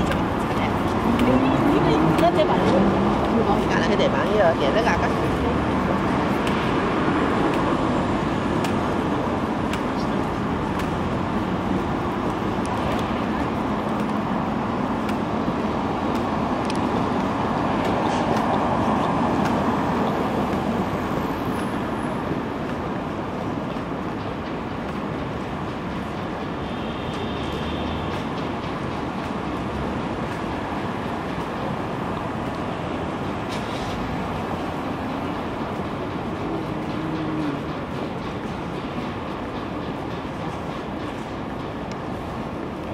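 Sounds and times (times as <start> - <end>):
cars passing: 0.0 - 42.9
city street traffic: 0.0 - 42.9.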